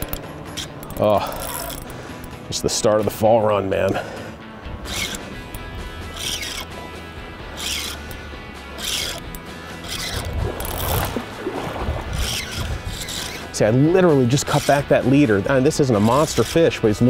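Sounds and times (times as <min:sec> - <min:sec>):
fishing reel zipping: 0:00.0 - 0:02.4, 0:04.8 - 0:16.9
background music: 0:00.0 - 0:17.0.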